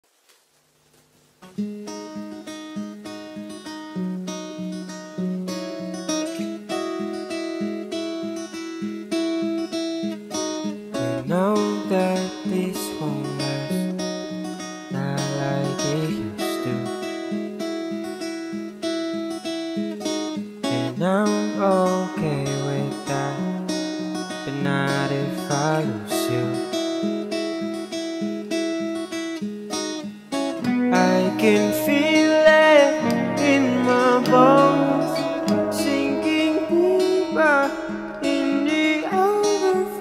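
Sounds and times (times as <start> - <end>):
acoustic guitar playing: 1.3 - 40.0.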